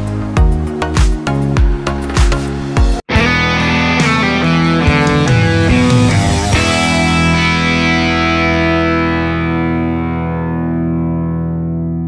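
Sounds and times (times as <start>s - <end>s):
distorted electric guitar chord ringing: 3.1s - 12.0s.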